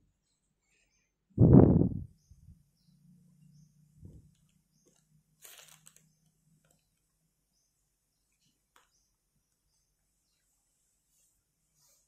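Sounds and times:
cotton cap rustling: 4.8s - 6.8s.

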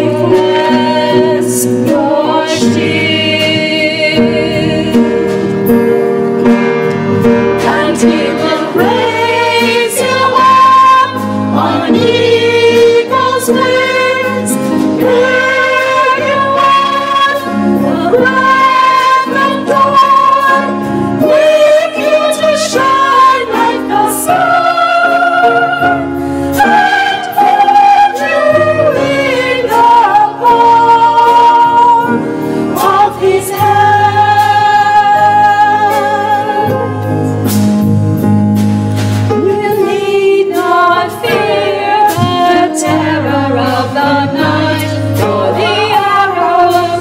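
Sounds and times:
choir singing: 0.0s - 5.1s, 7.6s - 37.3s, 39.4s - 47.0s
drum kit: 0.0s - 47.0s
guitar: 0.0s - 47.0s
piano: 0.0s - 47.0s.

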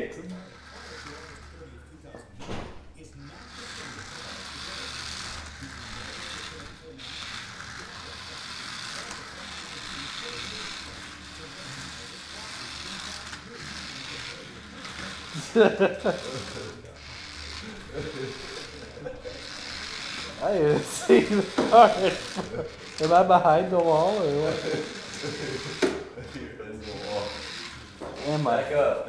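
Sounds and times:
toy car motor whirring: 0.2s - 2.2s, 3.2s - 29.0s.

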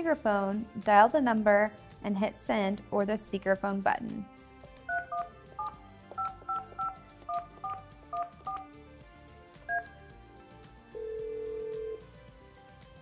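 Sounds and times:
phone keypad tones: 4.9s - 8.7s, 9.7s - 9.9s
phone ringback tone: 4.9s - 8.7s, 11.0s - 12.0s.

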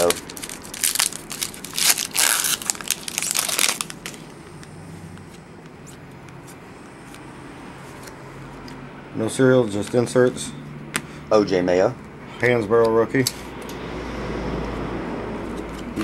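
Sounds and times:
plastic wrapper tearing and crinkling: 0.0s - 4.3s.

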